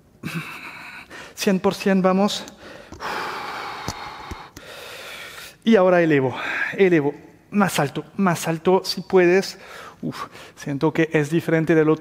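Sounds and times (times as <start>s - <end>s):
man breathing out forcefully: 2.6s - 5.6s.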